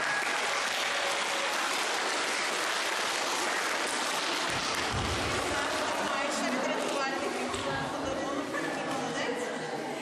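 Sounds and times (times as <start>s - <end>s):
people clapping: 0.0s - 8.2s.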